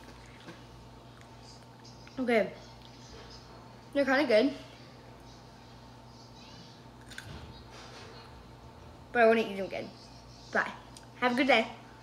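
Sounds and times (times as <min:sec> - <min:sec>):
pickle being chewed: 0:07.0 - 0:07.4.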